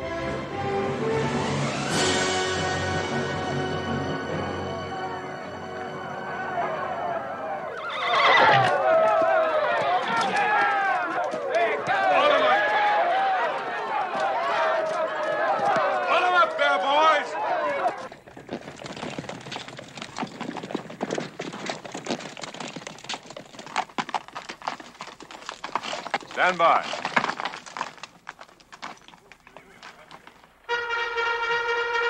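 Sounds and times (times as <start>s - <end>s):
crowd of voices: 2.8s - 18.1s
hooves clattering: 5.8s - 31.0s
horses whinnying: 6.4s - 30.4s.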